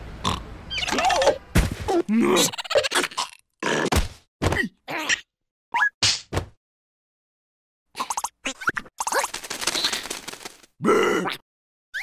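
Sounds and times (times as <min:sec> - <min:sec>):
cartoon character grunt: 0:02.0 - 0:02.6, 0:10.8 - 0:11.4.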